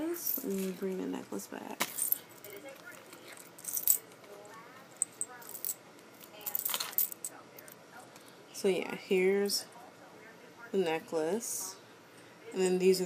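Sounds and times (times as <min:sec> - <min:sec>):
metal chain clinking: 0:01.8 - 0:04.2, 0:04.9 - 0:07.4.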